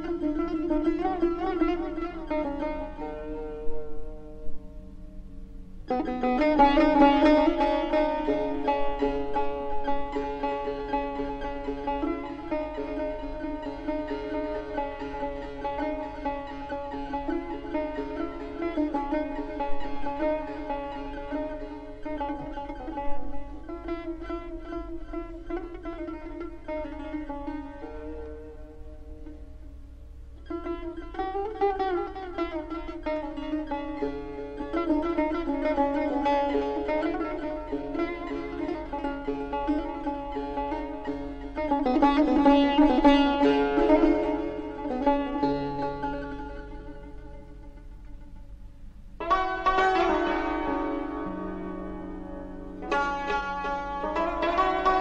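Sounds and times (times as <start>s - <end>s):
plucked lute playing: 0.0s - 55.0s.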